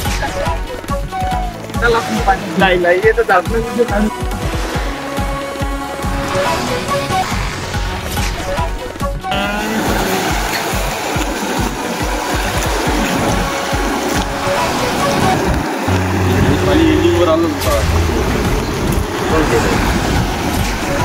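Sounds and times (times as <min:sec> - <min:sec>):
floodwater rushing: 0:00.0 - 0:21.0
wind buffeting microphone: 0:10.7 - 0:21.0.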